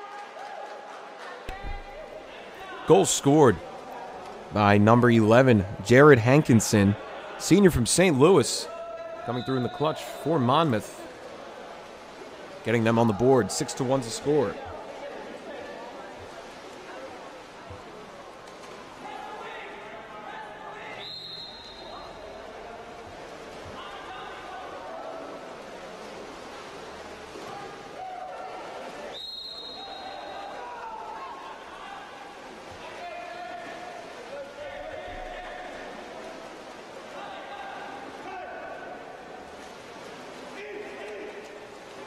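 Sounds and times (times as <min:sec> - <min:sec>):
players and spectators shouting: 0:00.0 - 0:11.2, 0:23.7 - 0:25.6, 0:27.5 - 0:36.2
referee whistle blasts: 0:21.0 - 0:22.2, 0:29.1 - 0:30.4.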